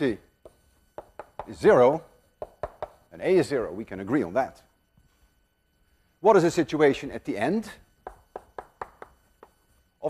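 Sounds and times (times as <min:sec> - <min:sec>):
chalk tapping on a blackboard: 0:00.4 - 0:01.6, 0:02.4 - 0:03.1, 0:08.0 - 0:09.7.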